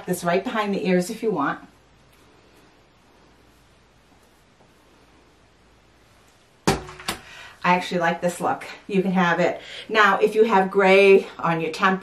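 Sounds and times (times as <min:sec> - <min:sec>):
loud knock: 0:06.7 - 0:07.2.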